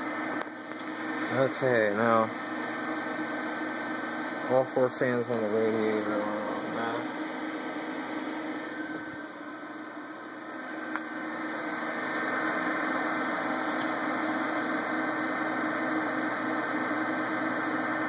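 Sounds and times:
computer fans whirring: 0.0 - 18.0.

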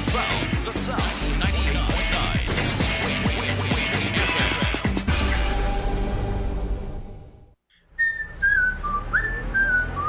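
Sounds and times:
person whistling a tune: 8.0 - 10.0.

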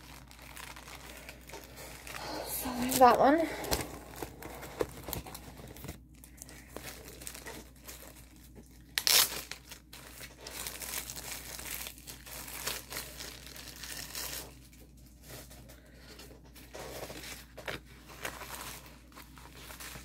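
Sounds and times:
plastic packaging crinkling: 0.0 - 20.0.

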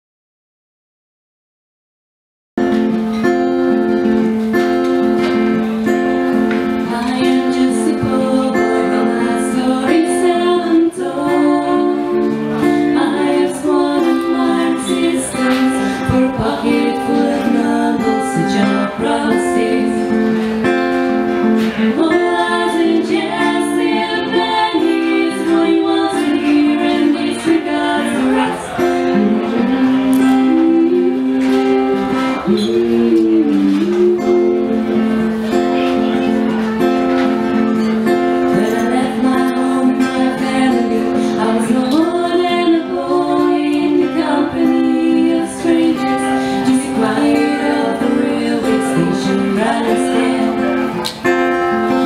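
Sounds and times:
acoustic guitar strumming: 2.6 - 52.0.

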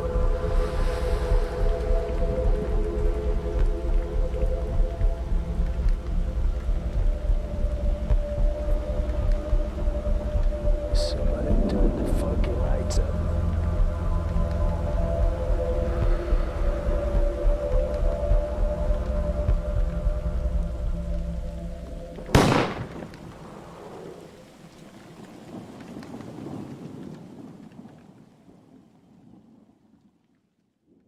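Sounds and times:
low droning chord: 0.0 - 22.8
rain: 0.0 - 31.0
thunderclap: 22.2 - 30.0.

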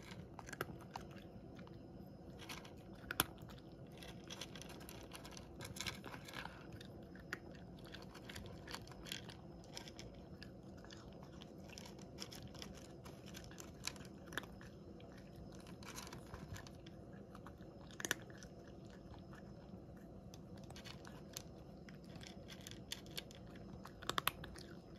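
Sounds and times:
cat crunching dry kibble: 0.0 - 24.9.

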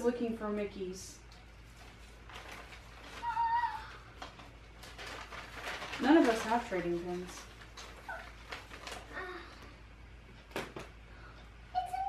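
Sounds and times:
paper bag rustling: 1.6 - 9.5.

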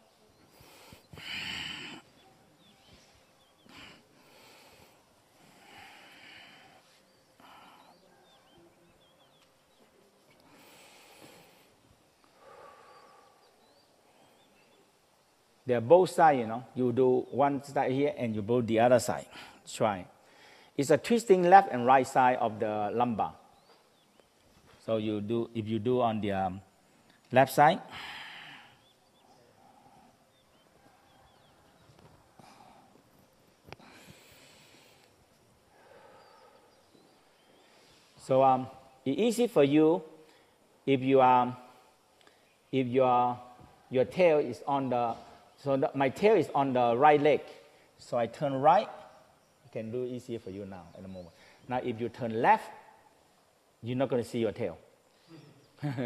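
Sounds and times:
person breathing quietly: 0.3 - 8.6, 10.3 - 14.8, 19.3 - 20.8, 27.9 - 38.2, 40.2 - 40.8, 51.3 - 51.7.

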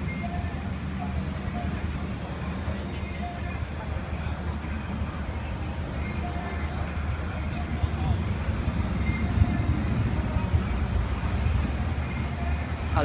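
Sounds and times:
faint distant voices: 0.0 - 13.0
low indoor rumble: 0.0 - 13.0.

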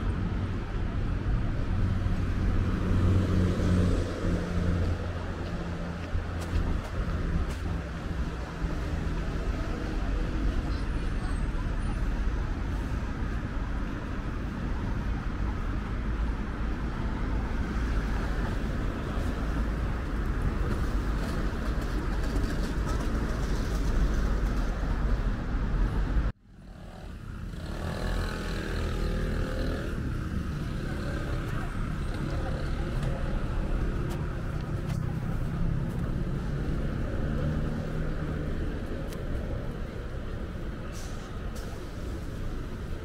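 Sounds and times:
street traffic: 0.0 - 43.0
faint voices: 27.8 - 43.0.

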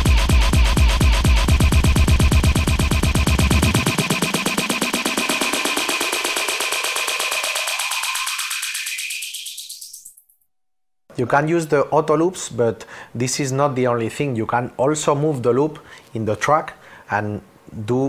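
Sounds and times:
stuttering electronic dance loop: 0.0 - 10.3.

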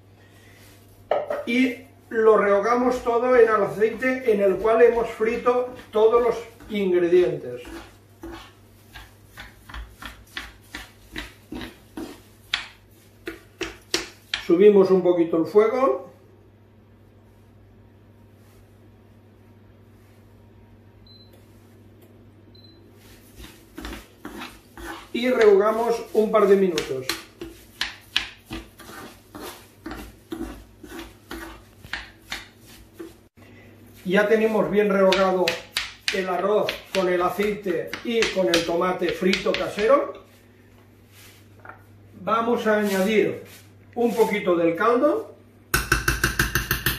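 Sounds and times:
spoon scraping rice in frying pan: 7.5 - 14.5, 23.0 - 33.3.

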